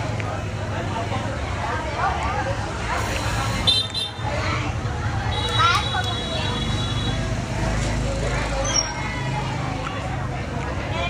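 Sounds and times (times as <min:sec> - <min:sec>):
indistinct voices talking: 0:00.0 - 0:11.0.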